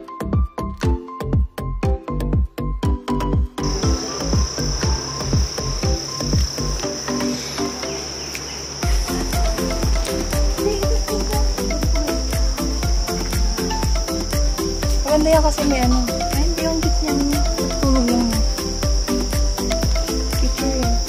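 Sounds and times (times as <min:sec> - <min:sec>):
electronic music with kick drum: 0:00.0 - 0:08.0, 0:08.8 - 0:21.0
high-pitched insect drone: 0:03.6 - 0:21.0.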